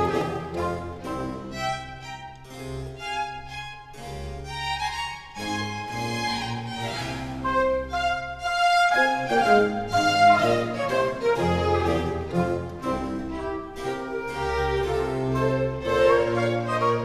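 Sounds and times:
harpsichord: 0.0s - 17.0s
strings playing baroque dance: 0.0s - 17.0s.

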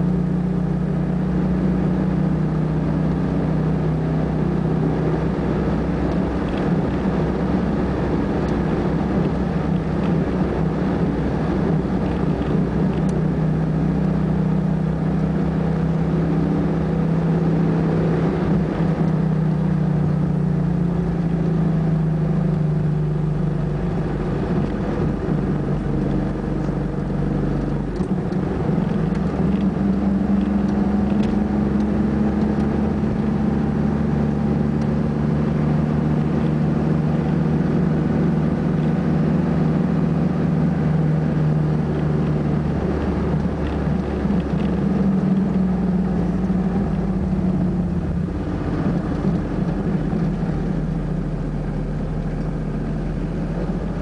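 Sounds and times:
car engine running: 0.0s - 54.0s.

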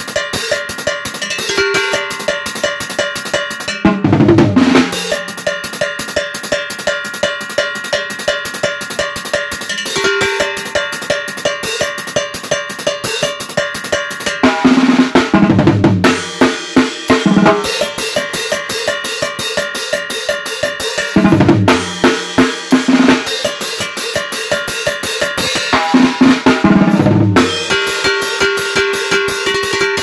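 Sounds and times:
drum kit with cymbals and cowbell: 0.0s - 30.0s.

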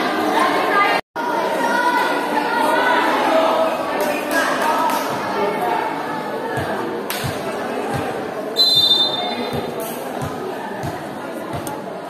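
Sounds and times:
crowd chatter: 0.0s - 12.0s
referee's whistle blast: 8.6s - 9.5s.

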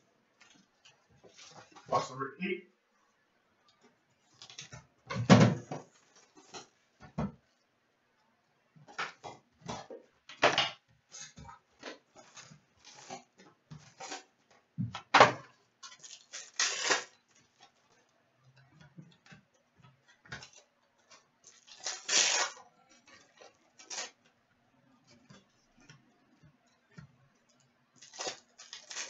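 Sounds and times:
crinkling packaging rustles: 0.4s - 2.0s, 11.2s - 14.3s, 15.8s - 18.1s, 20.4s - 24.3s, 28.0s - 29.0s
cards and packaging rustling: 15.8s - 18.1s, 20.4s - 24.2s, 28.0s - 29.0s.

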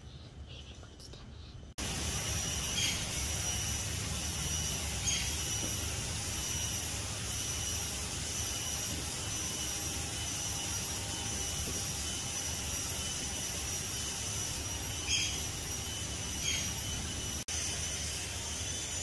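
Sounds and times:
high-pitched insect drone: 1.8s - 19.0s.

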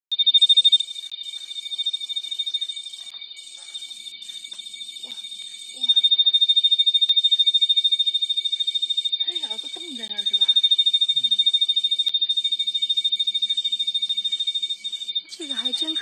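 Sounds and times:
tree cricket trilling: 0.1s - 16.0s.

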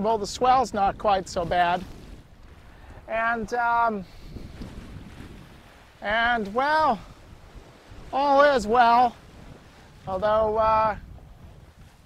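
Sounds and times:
sea rushing past boat: 0.0s - 12.0s
wind buffeting microphone: 0.0s - 12.0s.

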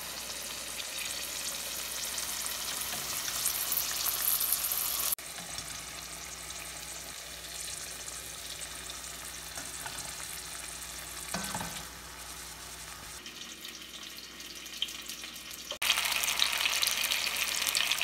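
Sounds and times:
onion rings deep-frying in oil: 0.0s - 18.0s.

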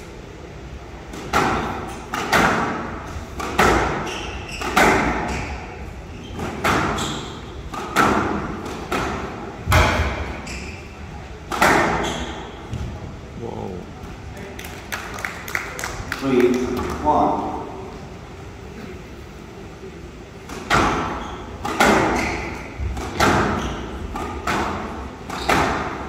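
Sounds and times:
squash ball knocks: 1.1s - 4.0s, 4.6s - 5.3s, 7.7s - 10.3s, 11.5s - 12.0s, 20.5s - 26.0s.

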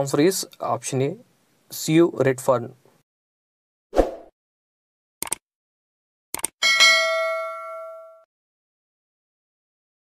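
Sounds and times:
bright bell ding: 6.6s - 8.3s.

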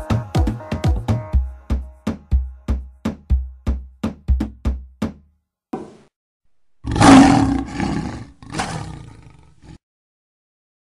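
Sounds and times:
lion roaring: 6.8s - 9.8s.

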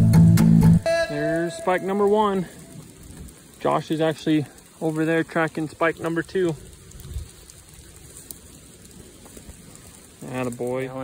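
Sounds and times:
rain falling on leaves: 0.0s - 11.0s.

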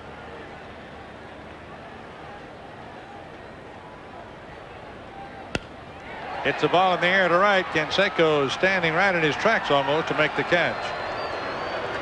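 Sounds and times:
wooden bat hitting baseball: 5.5s - 5.8s.

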